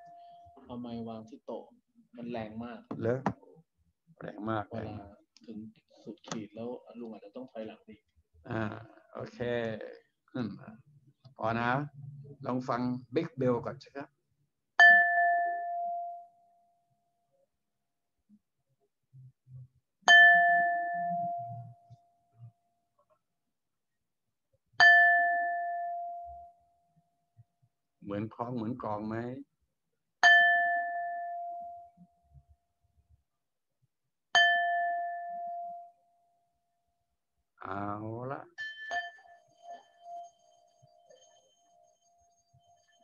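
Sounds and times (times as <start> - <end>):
struck bowl ringing: 14.8 - 16.3, 30.2 - 31.8, 34.4 - 35.9, 38.5 - 41.8
small metal chime struck: 38.6 - 40.3.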